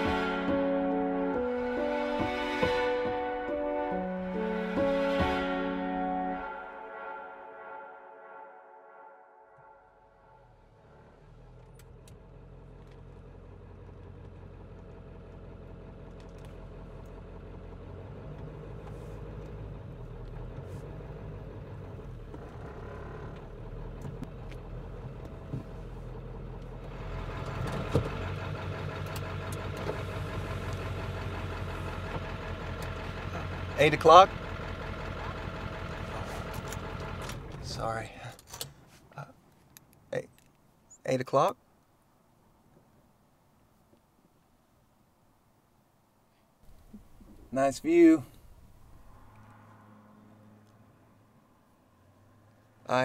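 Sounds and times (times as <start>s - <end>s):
pickup truck engine idling: 20.0s - 38.4s.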